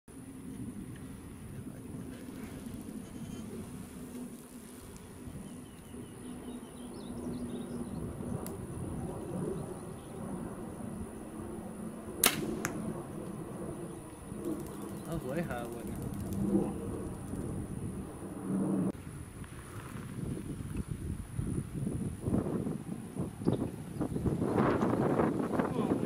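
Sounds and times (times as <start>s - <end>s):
arrow striking target: 12.2s - 12.8s
bow string crack: 12.2s - 12.8s.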